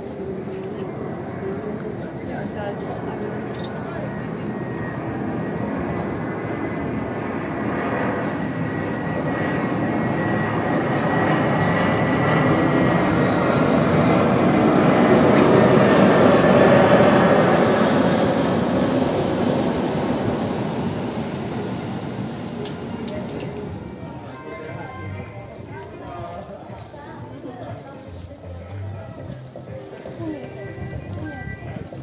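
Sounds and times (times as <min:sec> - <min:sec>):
faint high engine whine: 0:00.0 - 0:32.0
jet airliner passing overhead: 0:00.0 - 0:32.0.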